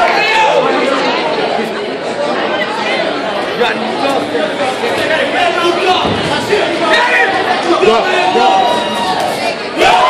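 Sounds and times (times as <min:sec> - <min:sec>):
crowd talking and shouting: 0:00.0 - 0:10.0.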